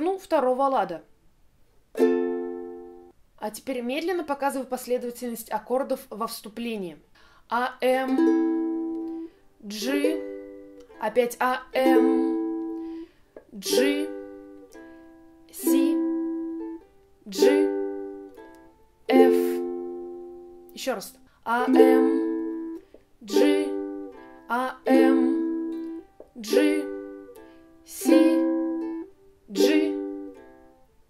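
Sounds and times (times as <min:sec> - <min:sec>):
ukulele chords strummed: 0:02.0 - 0:03.1, 0:07.9 - 0:11.1, 0:11.7 - 0:30.9.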